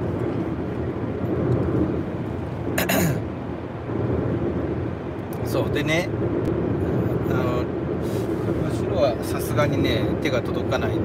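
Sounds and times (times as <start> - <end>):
road and engine noise inside vehicle: 0.0 - 11.0.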